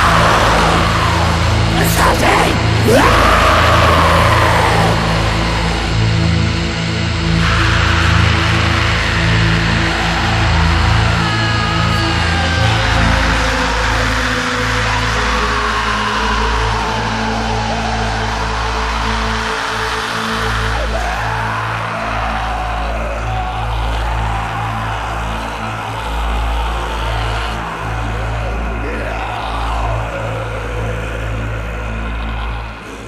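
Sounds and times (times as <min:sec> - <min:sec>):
distorted guitar and bass drone: 0:00.0 - 0:13.1.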